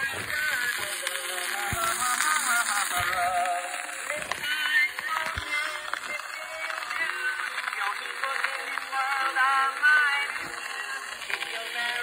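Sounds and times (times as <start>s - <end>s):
man singing with vibrato: 0.0s - 12.0s.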